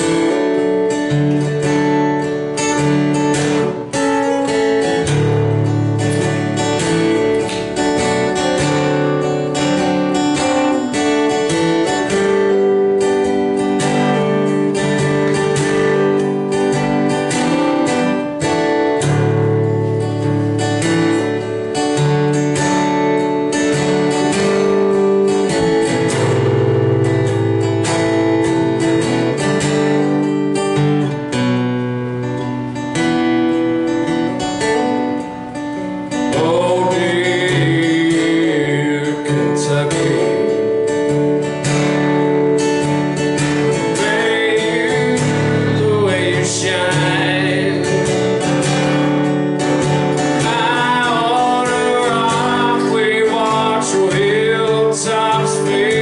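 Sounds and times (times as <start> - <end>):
acoustic guitar picking and strumming: 0.0 - 56.0.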